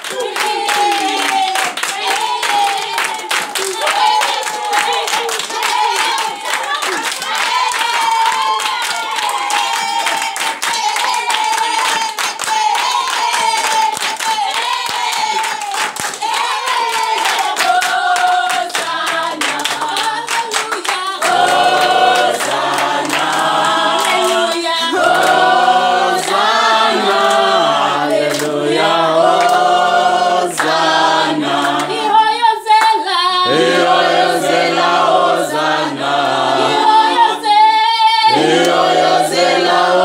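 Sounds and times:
hands clapping: 0.0 - 29.8, 30.5 - 32.0, 38.3 - 39.5
congregation singing: 0.0 - 40.0.

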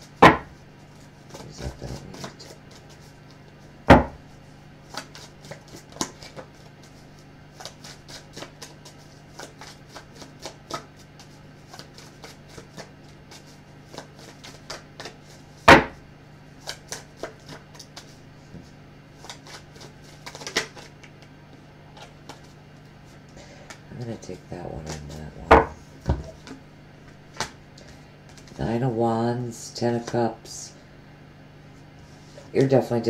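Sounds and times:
faint low hum: 0.0 - 33.0
cards being shuffled: 0.9 - 3.6, 4.8 - 15.9, 16.6 - 18.2, 19.2 - 21.3, 21.9 - 23.8, 24.8 - 28.6.

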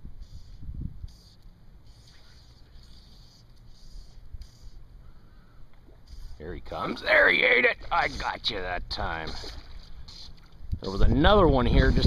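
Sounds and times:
fly line swishing through rod guides: 0.2 - 5.0, 5.8 - 8.6, 9.2 - 10.7.

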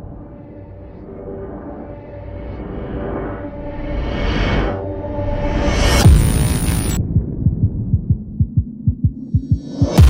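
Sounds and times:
low thumping music pulse: 0.0 - 10.0.

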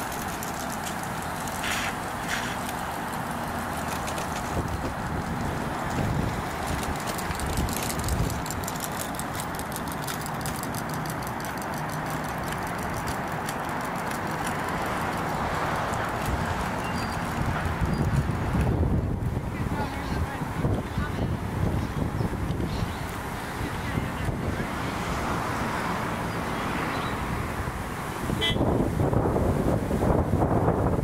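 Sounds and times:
bus engine running: 0.0 - 31.0
road noise: 0.0 - 31.0.

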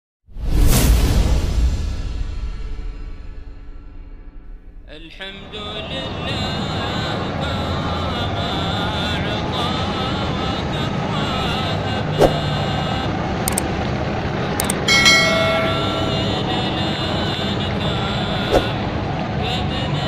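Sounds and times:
bus engine driving past: 4.9 - 20.0
street and crowd noise: 5.5 - 20.0
short click: 13.5 - 13.7, 14.6 - 16.0
bright chime-like effect: 14.6 - 16.8.

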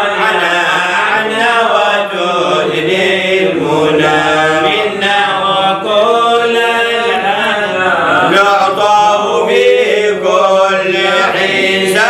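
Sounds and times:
man chanting devotional poem: 0.0 - 12.0.

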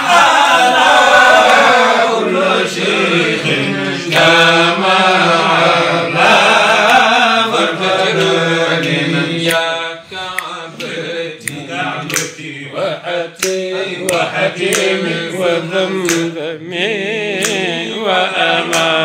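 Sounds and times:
men chanting melodically: 0.0 - 19.0.

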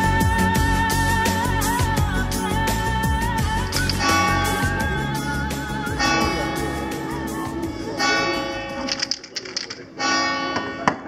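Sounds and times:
strummed guitar music: 3.8 - 8.9.

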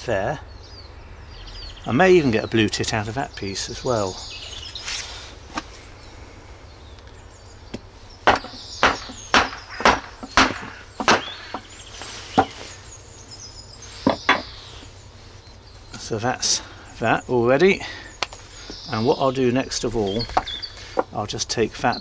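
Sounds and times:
sharp wooden knocks: 7.7 - 11.7, 14.0 - 14.5.

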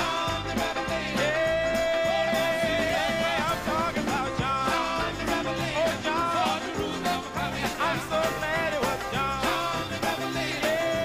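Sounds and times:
bass: 0.0 - 11.0
drum beat: 0.0 - 11.0
live band playing: 0.0 - 11.0.

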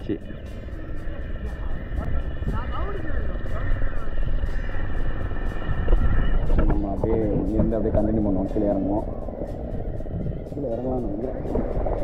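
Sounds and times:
background music: 0.0 - 12.0
boat engine rumble: 0.0 - 12.0.

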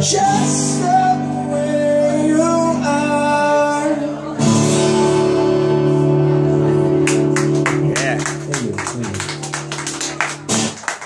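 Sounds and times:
acoustic guitar strum: 4.4 - 8.5
people clapping: 7.0 - 11.0.

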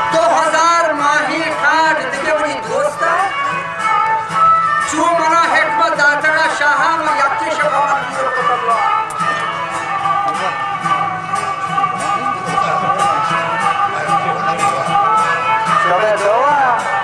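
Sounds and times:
plucked long-necked lute: 0.0 - 17.0
sustained melody line: 0.0 - 17.0.

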